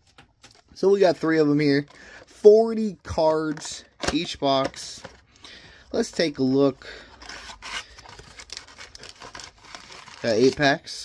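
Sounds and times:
card packs crinkling: 0.0 - 11.0.

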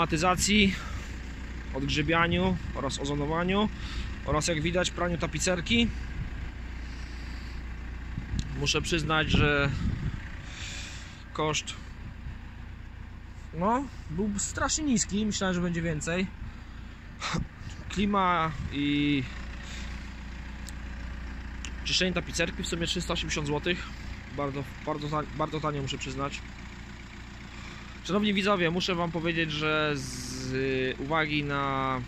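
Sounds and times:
low background rumble: 0.0 - 32.0.

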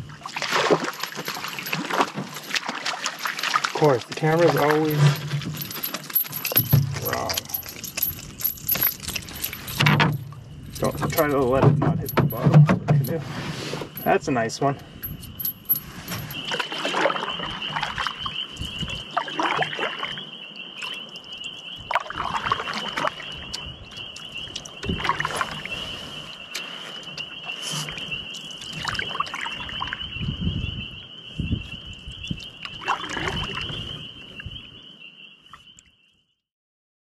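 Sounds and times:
paddle strokes splashing in water: 0.0 - 5.6, 16.5 - 21.0, 21.9 - 29.9.

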